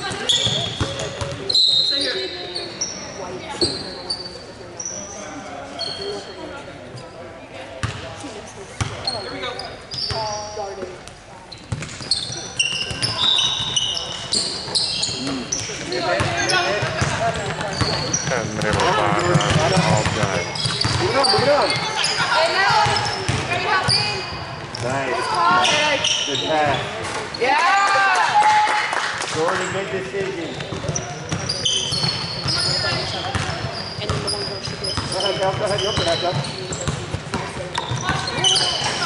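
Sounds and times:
sneakers squeaking: 0.0 - 28.2, 29.6 - 39.0
players calling out: 14.8 - 27.8
basketball bouncing: 16.2 - 21.9, 22.6 - 23.5, 30.6 - 34.3.

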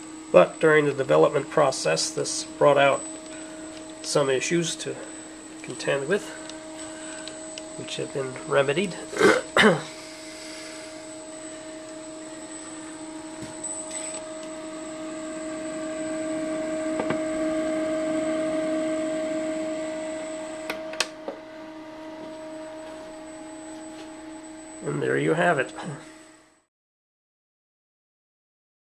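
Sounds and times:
model train motor whine: 8.4 - 21.1
person coughing: 9.1 - 10.0.

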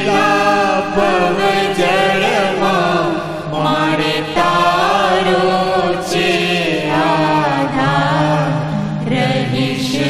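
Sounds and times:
voices chanting a hymn: 0.0 - 10.0.

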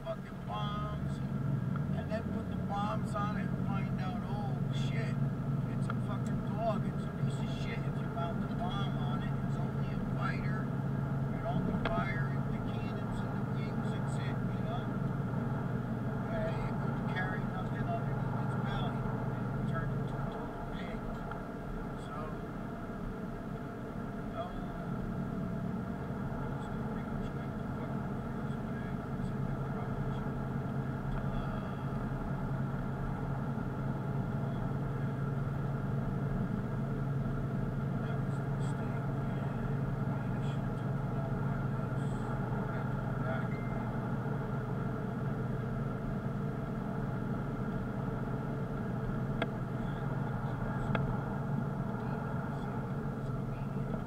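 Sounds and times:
car engine and road drone: 0.0 - 54.0.

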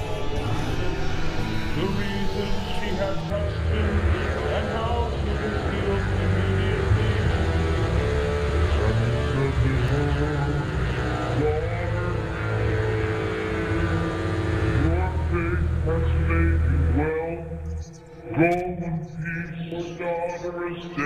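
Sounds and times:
voice-like sounds sliding upward: 0.0 - 16.3
low rumbling drone: 0.0 - 21.0.

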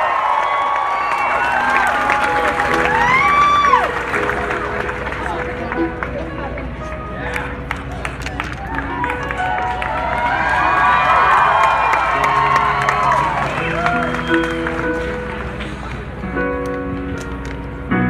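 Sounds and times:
crowd cheering and whistling: 0.0 - 5.3, 8.0 - 15.8
sustained keyboard chords: 1.6 - 18.0.

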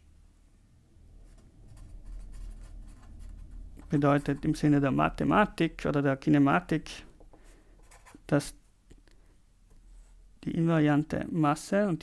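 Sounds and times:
felt-tip pen scratching on paper: 1.7 - 4.7.

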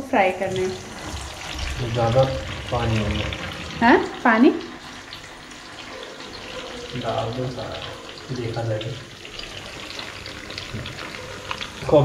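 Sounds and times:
food sizzling in hot oil: 0.0 - 12.0.

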